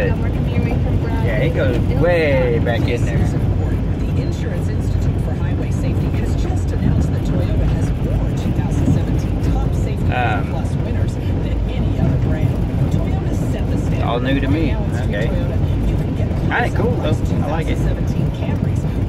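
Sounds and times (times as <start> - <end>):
car tyres rumbling on gravel: 0.0 - 19.0
man's voice: 1.1 - 3.4, 10.1 - 10.6, 14.0 - 15.6, 16.4 - 17.9.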